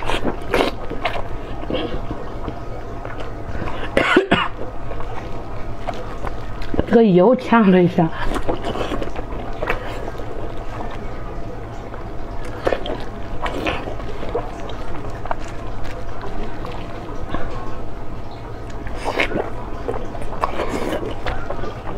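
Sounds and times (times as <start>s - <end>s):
wet mouth sounds: 0.0s - 6.9s, 8.1s - 11.0s, 11.8s - 17.9s, 18.6s - 21.9s
chewing with crunches: 0.0s - 21.9s
steady low hum: 0.0s - 21.9s.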